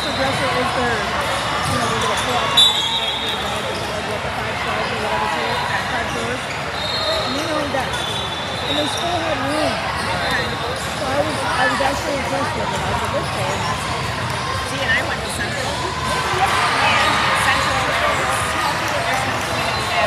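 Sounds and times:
chatter of voices: 0:00.0 - 0:20.0.

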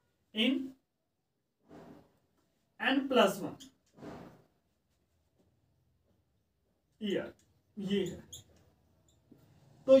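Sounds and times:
man speaking: 0:00.3 - 0:00.8, 0:02.8 - 0:03.6, 0:07.0 - 0:08.4
marker squeaking on whiteboard: 0:03.4 - 0:05.4, 0:07.1 - 0:10.0.

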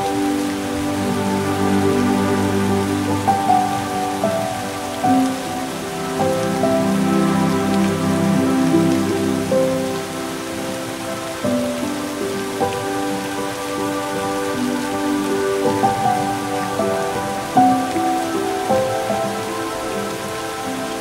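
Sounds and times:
slow background music: 0:00.0 - 0:21.0
steady rain-like hiss: 0:00.0 - 0:21.0.

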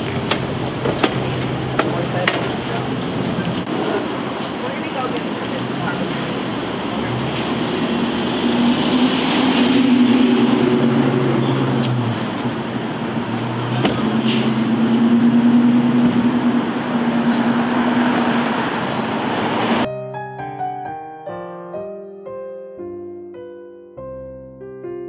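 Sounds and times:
low engine hum: 0:00.0 - 0:19.9
vehicle engines passing: 0:00.0 - 0:19.9.

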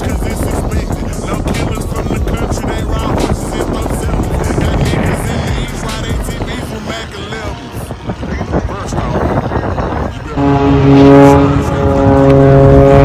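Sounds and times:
rap music with vocals: 0:00.0 - 0:10.7
boat engines rumbling: 0:00.0 - 0:13.0
wind: 0:00.0 - 0:13.0.

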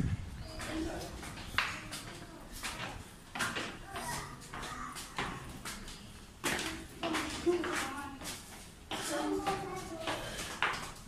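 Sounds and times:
footsteps on concrete stairs: 0:00.0 - 0:11.0.

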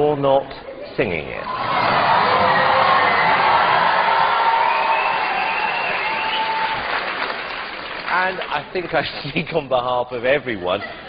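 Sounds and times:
audience applauding and cheering: 0:01.4 - 0:09.2
people shouting: 0:01.5 - 0:06.9.

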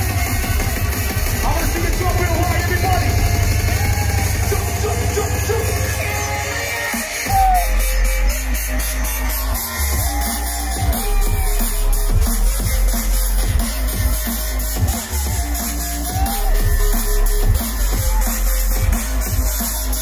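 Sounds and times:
electronic dance music: 0:00.0 - 0:20.0
person speaking into a microphone: 0:01.4 - 0:03.5.

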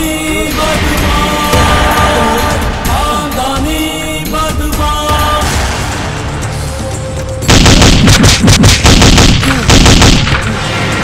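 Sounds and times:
automatic rifle fire: 0:07.5 - 0:10.4.

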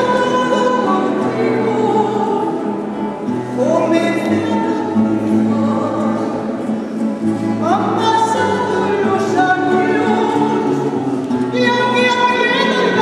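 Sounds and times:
guitar and lute accompaniment: 0:00.0 - 0:13.0.

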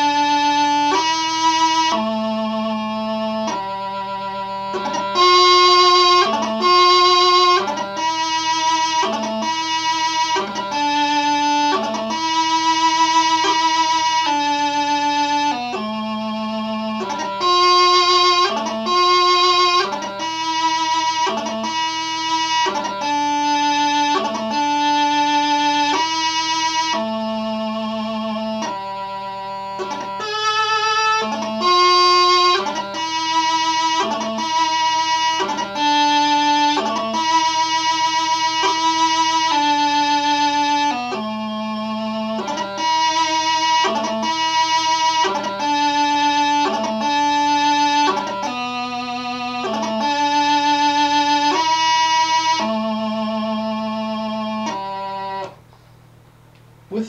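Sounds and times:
bagpipe practice chanter melody: 0:00.0 - 0:55.7.

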